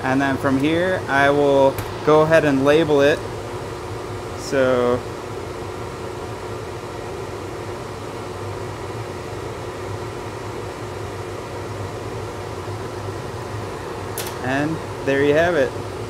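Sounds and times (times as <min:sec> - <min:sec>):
fan humming with airy noise: 0:00.0 - 0:16.0.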